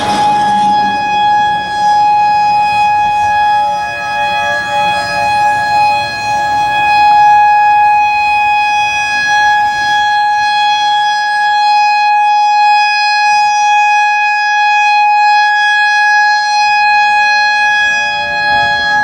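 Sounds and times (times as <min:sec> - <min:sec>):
warning siren steady tone: 0:00.0 - 0:19.0.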